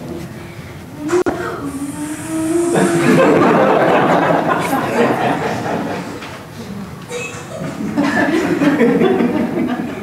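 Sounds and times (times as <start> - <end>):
drawn-out vocal ooh: 0.9 - 3.8
excited voices: 1.2 - 6.0
people laughing: 2.6 - 6.4, 7.5 - 10.0.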